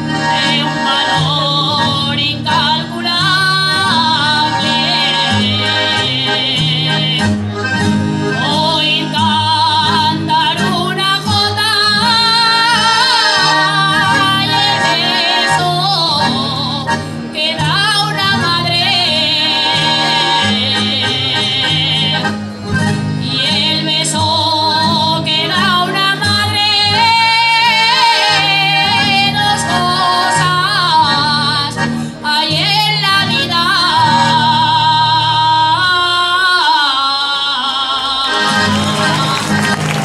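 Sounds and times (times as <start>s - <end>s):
guitars strumming chords: 0.0s - 36.4s, 38.2s - 40.0s
woman singing: 0.1s - 7.4s, 8.4s - 22.2s, 23.2s - 39.8s.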